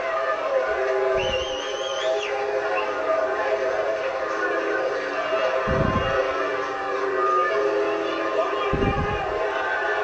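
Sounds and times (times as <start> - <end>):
background music: 0.0 - 10.0
high wavering whistle: 1.2 - 2.9.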